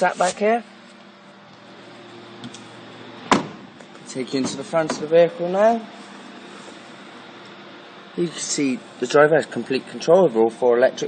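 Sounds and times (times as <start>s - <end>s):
low steady hum: 0.0s - 11.0s
car door clunk: 3.2s - 3.8s.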